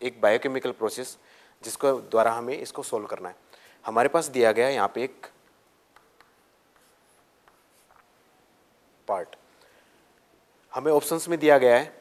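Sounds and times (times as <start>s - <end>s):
chalk writing on chalkboard: 5.9s - 8.2s.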